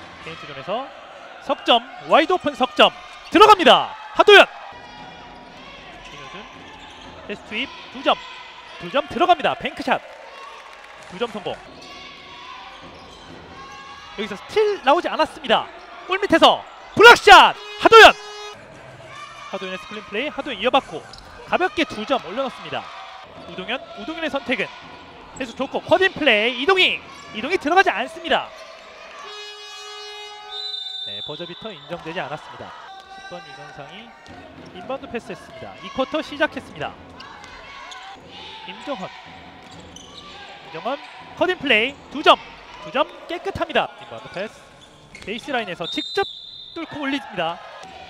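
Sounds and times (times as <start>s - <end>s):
buzzer horn tone: 17.4s - 18.6s, 29.2s - 31.8s.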